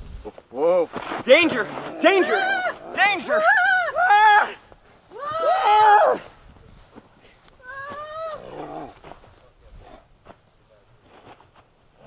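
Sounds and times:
person crying out: 2.1 - 6.3, 7.6 - 8.6.

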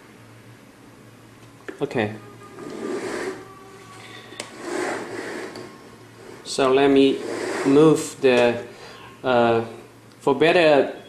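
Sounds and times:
handling rubbing noise: 2.5 - 8.6.

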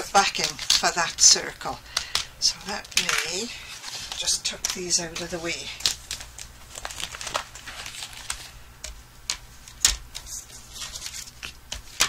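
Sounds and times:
paper rustling: 2.7 - 12.0.

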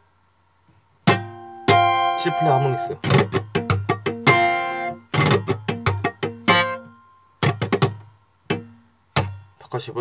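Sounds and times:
acoustic guitar chords ringing: 1.0 - 9.6
percussive hits on guitar: 1.0 - 9.6.

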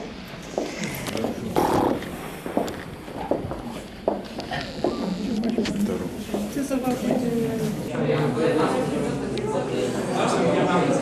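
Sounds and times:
footsteps on stone floor: 0.5 - 7.3.

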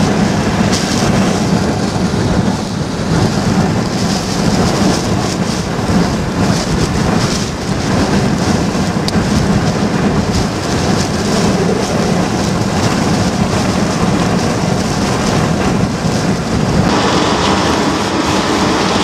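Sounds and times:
heavy rain beating on a car: 0.0 - 19.0
hurricane wind roaring: 0.0 - 19.0.

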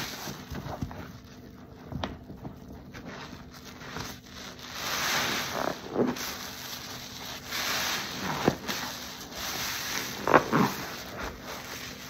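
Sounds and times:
foam and liquid running: 2.7 - 12.0
sponge squelching: 2.9 - 12.0.

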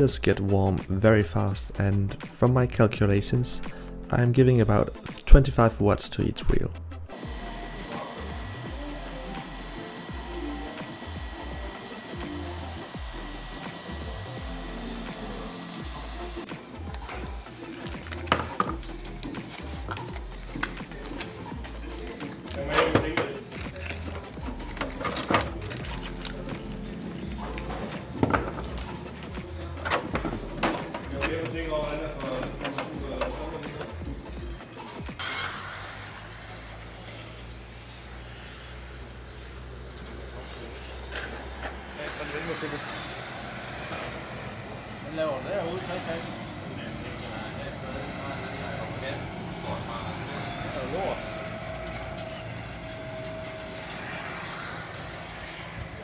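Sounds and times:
rc cars whining on a track: 7.1 - 56.0.

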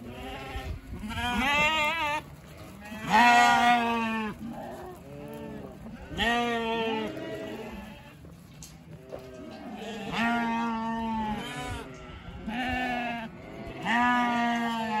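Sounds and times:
lambs bleating: 0.0 - 8.2, 9.0 - 15.0
loud long bleats: 2.8 - 8.2, 9.0 - 15.0.

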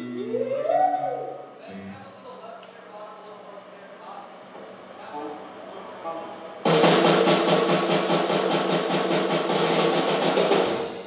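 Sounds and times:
amplified guitar chords: 0.0 - 2.0
fast drum roll with cymbals: 6.7 - 11.0.

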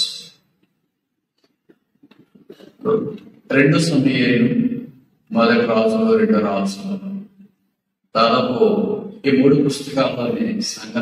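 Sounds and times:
man speaking through microphone: 0.0 - 0.4, 2.8 - 7.3, 8.1 - 11.0.

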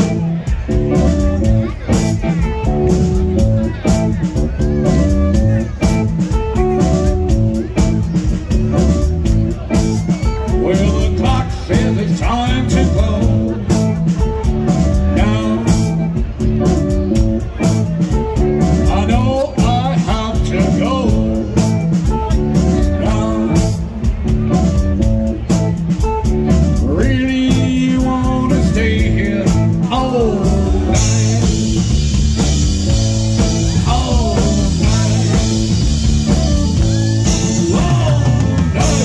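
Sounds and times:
drum kit beat: 0.0 - 39.0
electric guitar: 0.0 - 39.0
electric organ: 0.0 - 39.0
lead singer singing: 10.0 - 13.6, 14.8 - 16.2, 18.6 - 21.6, 22.6 - 24.0, 26.8 - 31.9, 33.4 - 39.0.

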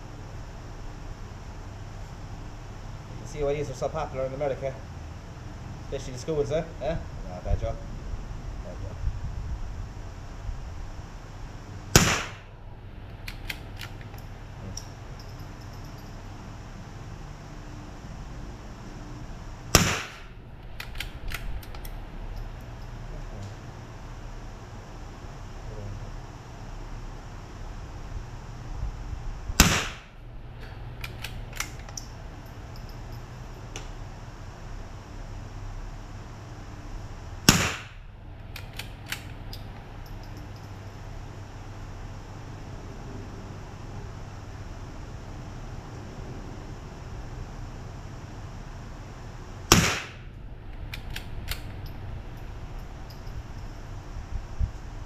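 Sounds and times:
rifle shot: 11.9 - 12.5, 19.7 - 20.3, 29.6 - 30.2, 37.5 - 38.0, 49.7 - 50.3
light clicks: 20.6 - 22.8, 30.6 - 33.1, 38.4 - 40.9, 50.7 - 53.8.

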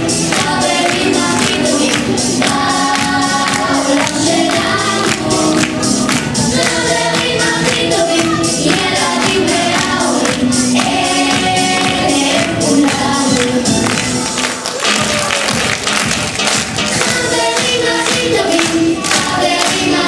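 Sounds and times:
children's choir singing: 0.0 - 14.5, 16.9 - 20.0
musical accompaniment with beat: 0.0 - 20.0.

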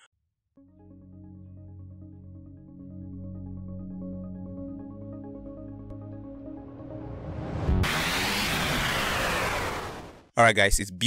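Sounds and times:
whoosh falling in pitch: 6.6 - 10.3.

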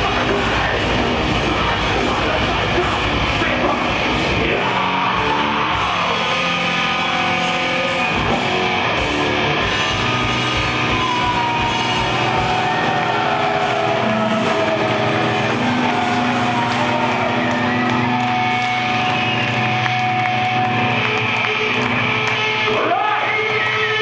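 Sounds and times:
bass guitar: 0.0 - 24.0
electric guitars droning: 0.0 - 24.0.

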